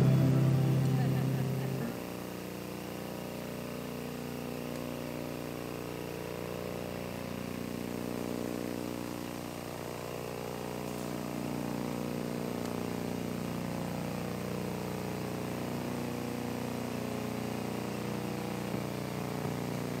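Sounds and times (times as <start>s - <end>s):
low droning hum: 0.0s - 2.0s.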